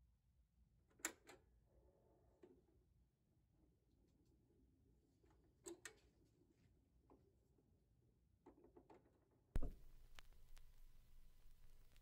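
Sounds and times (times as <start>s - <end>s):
vinyl click: 9.6s - 12.0s
vinyl pop: 9.6s - 12.0s
vinyl surface noise rumble: 9.6s - 12.0s.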